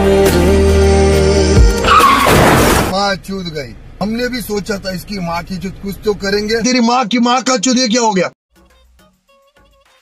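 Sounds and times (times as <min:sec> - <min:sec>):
song with steady bass: 0:00.0 - 0:01.9
noisy sound effect with squeal: 0:01.8 - 0:02.9.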